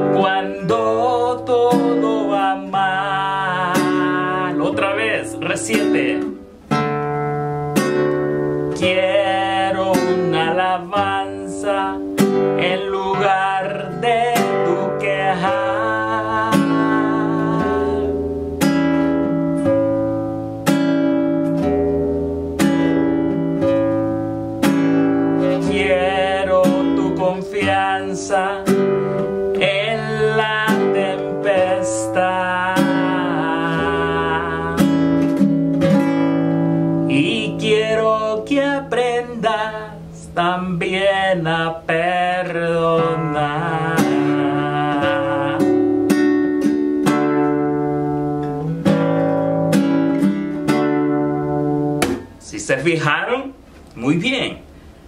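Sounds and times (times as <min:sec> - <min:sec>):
person singing: 0:00.0 - 0:06.4, 0:08.7 - 0:18.3, 0:24.6 - 0:35.4, 0:37.1 - 0:46.2
classical guitar strumming: 0:00.0 - 0:55.0.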